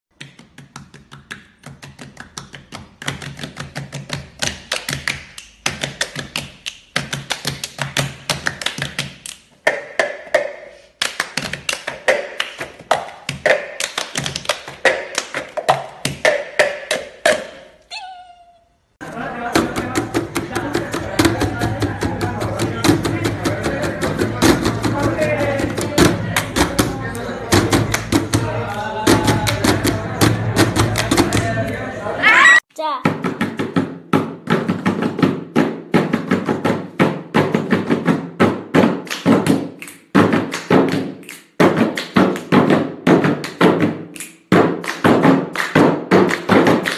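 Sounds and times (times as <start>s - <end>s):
person singing: 17.9s - 33.0s.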